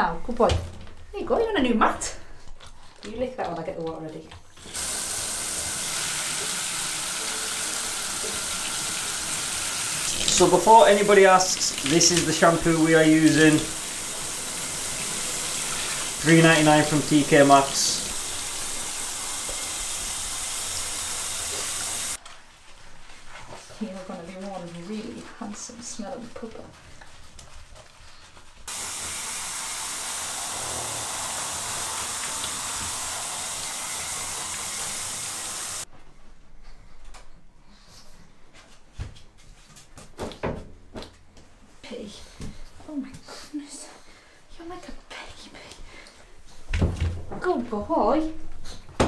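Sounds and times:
tap water running into bathtub: 0:02.6 - 0:22.2, 0:28.7 - 0:35.9.

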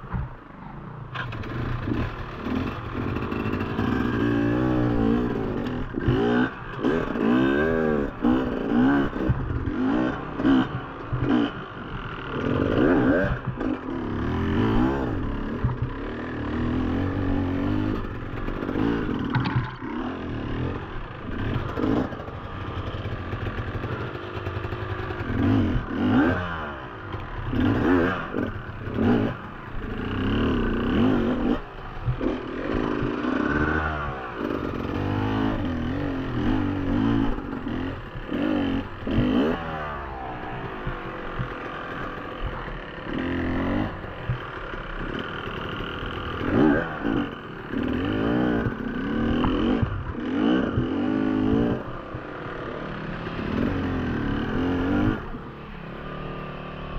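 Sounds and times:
dirt bike engine revving: 0:01.2 - 0:56.9.

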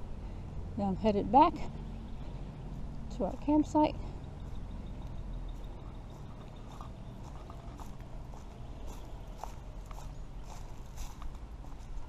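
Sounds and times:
low steady rumble: 0:00.0 - 0:12.0
footsteps on dry leaves: 0:04.4 - 0:12.0.

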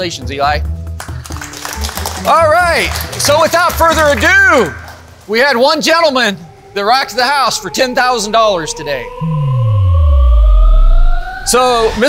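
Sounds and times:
tone gliding upward: 0:05.9 - 0:12.0
deep bass sweep: 0:06.7 - 0:12.0.

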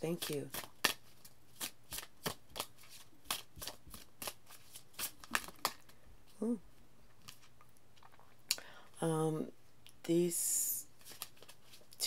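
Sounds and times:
cards being shuffled by hand: 0:00.0 - 0:06.0, 0:11.0 - 0:12.0.

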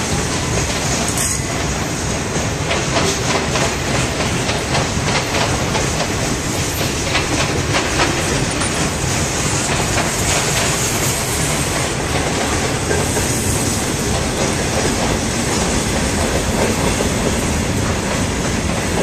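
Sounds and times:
steel wheels rumbling on rail: 0:00.0 - 0:19.0.

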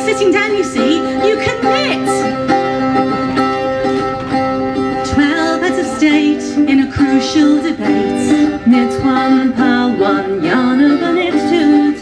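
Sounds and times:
woman singing: 0:00.0 - 0:02.3, 0:05.0 - 0:12.0
acoustic guitar playing: 0:00.0 - 0:12.0.

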